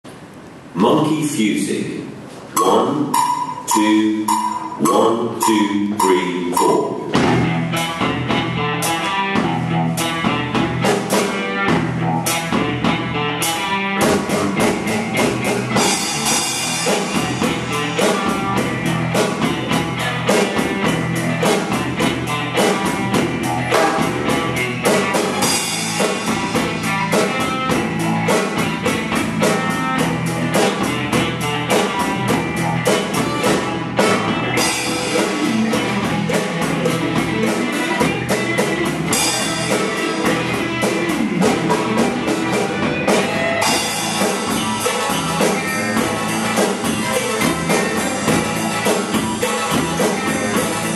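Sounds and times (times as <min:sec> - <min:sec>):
drum kit rock groove: 0:02.2 - 0:50.9
backing track with guitar: 0:02.5 - 0:50.9.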